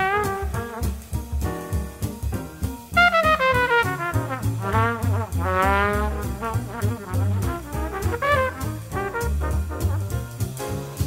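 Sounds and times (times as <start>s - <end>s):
horn melody with vibrato: 0.0s - 1.1s, 3.0s - 10.0s
walking string bass: 0.3s - 10.8s.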